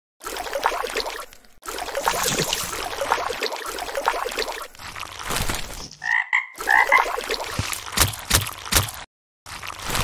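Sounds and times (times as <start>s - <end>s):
frog croaking: 6.0s - 7.2s.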